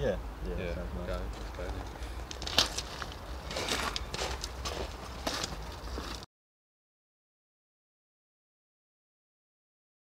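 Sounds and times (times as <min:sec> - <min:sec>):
footsteps outdoors: 0:01.0 - 0:06.3.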